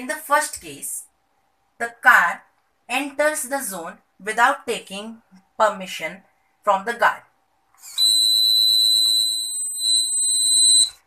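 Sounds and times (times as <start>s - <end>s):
high-pitched buzzer alarm tone: 7.8s - 11.0s.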